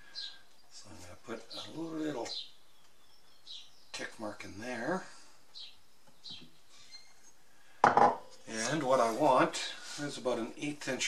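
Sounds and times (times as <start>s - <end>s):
man speaking: 8.5s - 11.0s.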